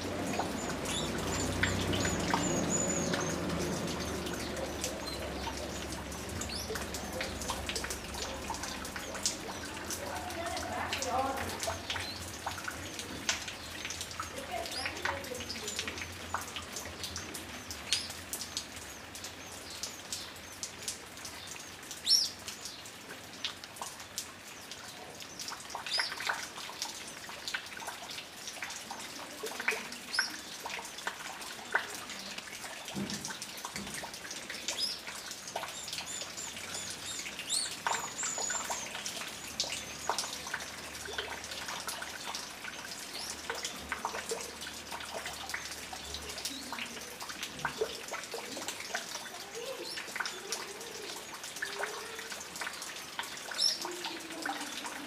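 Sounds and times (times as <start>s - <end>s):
birds chirping: 0.0s - 20.7s, 34.5s - 41.6s.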